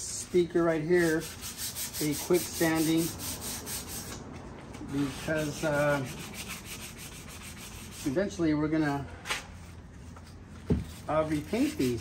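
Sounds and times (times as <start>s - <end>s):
sandpaper rubbing wood: 0.1s - 4.2s, 4.9s - 8.3s, 10.9s - 12.0s.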